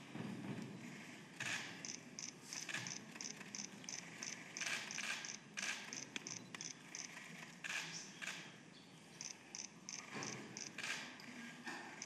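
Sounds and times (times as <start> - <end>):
camera shutters ticking: 1.4 - 8.4
sharp clicks: 1.4 - 8.5.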